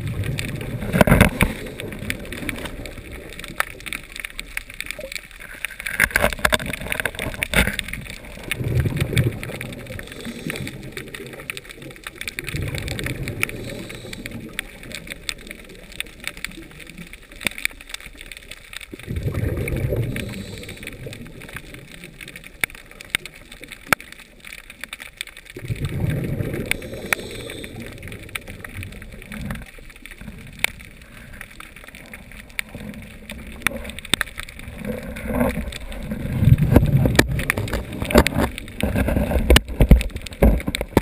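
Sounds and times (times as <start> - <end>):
underwater clicks and crackles: 0.0 - 41.0.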